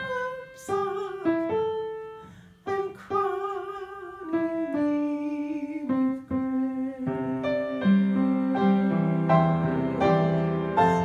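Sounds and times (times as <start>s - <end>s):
person singing with vibrato: 0.0s - 11.0s
upright piano playing a hymn: 0.0s - 11.0s.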